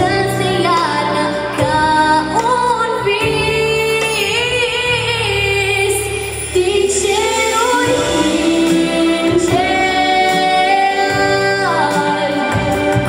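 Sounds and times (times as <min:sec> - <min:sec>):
girl singing into microphone: 0:00.0 - 0:13.0
instrumental accompaniment: 0:00.0 - 0:13.0.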